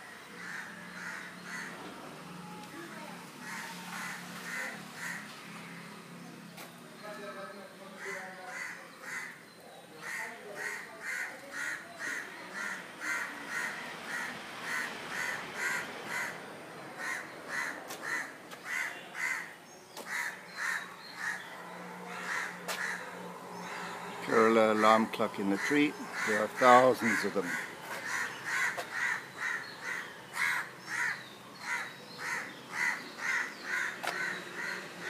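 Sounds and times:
crows cawing: 0:00.0 - 0:02.5, 0:03.4 - 0:06.0, 0:07.9 - 0:09.4, 0:10.0 - 0:35.0.

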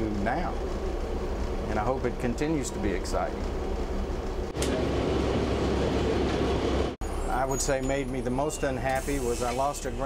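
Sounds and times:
bus engine rumble: 0:00.0 - 0:10.0
road and interior noise: 0:00.0 - 0:10.0.

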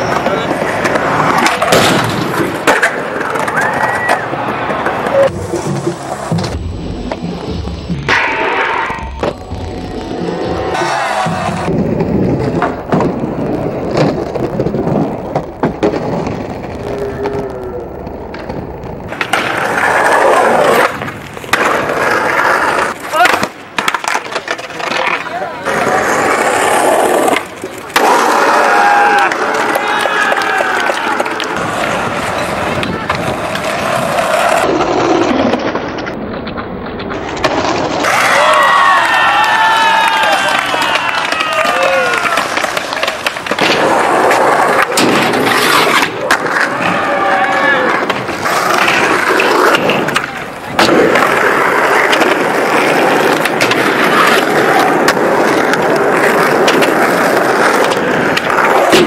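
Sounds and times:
skateboard wheels rolling on concrete: 0:00.0 - 0:59.0
skateboards knocking and clacking: 0:00.0 - 0:59.0.

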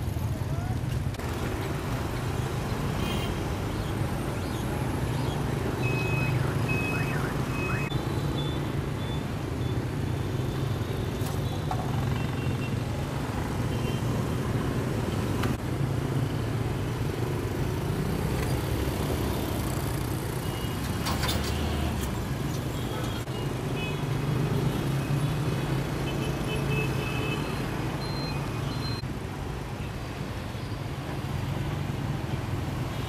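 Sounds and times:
scooters and motorbikes in traffic: 0:00.0 - 0:33.0.

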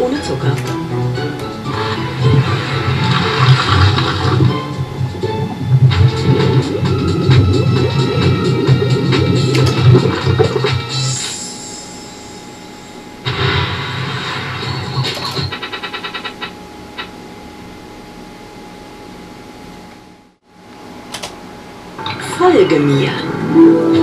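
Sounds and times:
slot machine reels spinning: 0:01.6 - 0:12.4
click: 0:20.7 - 0:21.4.

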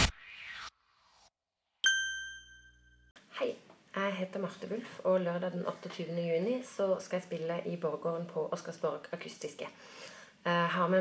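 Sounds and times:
bright electronic chime: 0:01.8 - 0:03.2.

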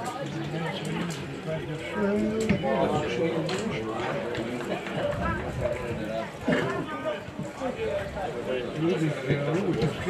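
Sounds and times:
outdoor background noise: 0:00.0 - 0:10.0
people talking and calling out: 0:00.0 - 0:10.0.

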